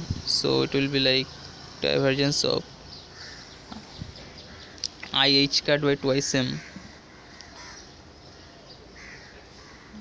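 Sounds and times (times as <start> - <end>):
distant bird calling: 0.5 - 10.0.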